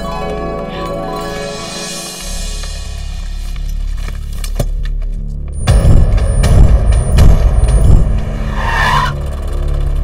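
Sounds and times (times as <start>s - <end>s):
film background music: 0.0s - 10.0s
motor vehicle rumble: 3.0s - 10.0s.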